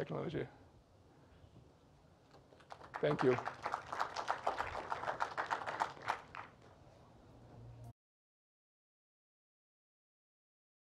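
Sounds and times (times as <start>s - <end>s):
audience applause: 2.7s - 6.6s.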